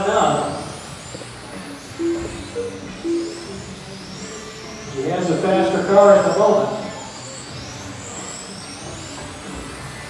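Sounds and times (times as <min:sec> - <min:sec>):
electric motors whining: 0:00.0 - 0:10.0.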